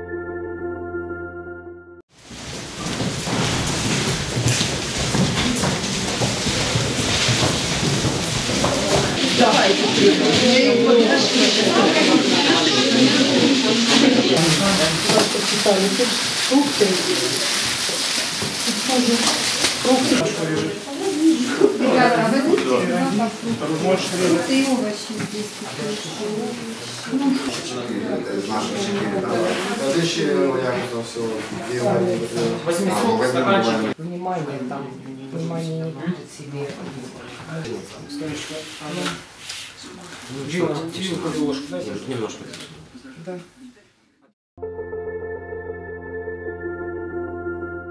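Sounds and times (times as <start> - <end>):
plastic bags rustling: 2.1 - 27.6, 36.5 - 43.1
indistinct chatter: 4.8 - 43.8.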